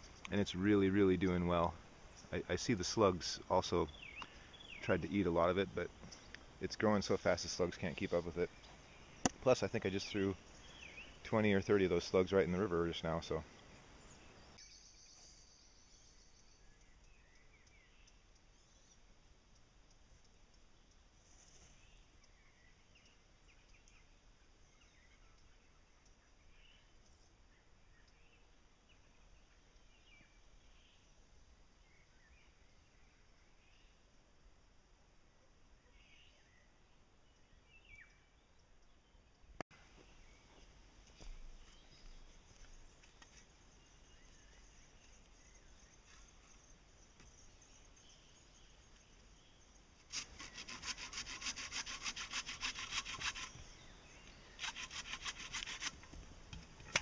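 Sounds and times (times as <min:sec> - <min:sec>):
faint high bird chirps: 0:01.6 - 0:19.1, 0:35.7 - 0:51.7
rapid rasping strokes on wood: 0:50.1 - 0:53.6, 0:54.6 - 0:56.0.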